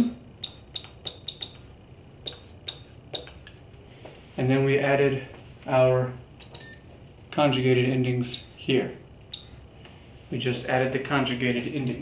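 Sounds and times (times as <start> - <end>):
pen tapping on a whiteboard: 0.7 - 3.6.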